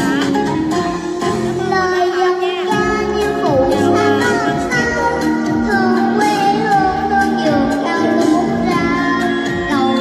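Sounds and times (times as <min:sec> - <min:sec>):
instrumental backing music: 0:00.0 - 0:10.0
girl singing: 0:01.5 - 0:10.0.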